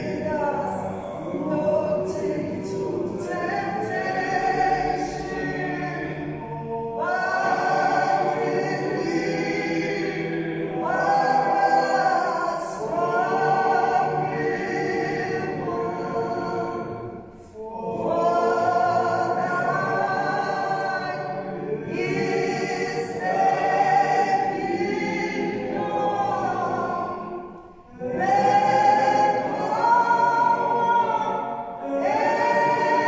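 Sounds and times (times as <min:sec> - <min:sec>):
choir singing: 0:00.0 - 0:33.0.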